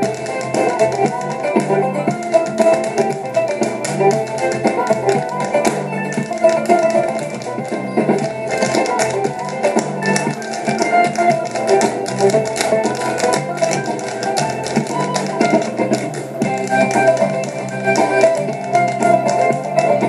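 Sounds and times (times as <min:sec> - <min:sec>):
dancers' shoes clicking on stage: 0:00.0 - 0:20.0
lively dance music: 0:00.0 - 0:20.0.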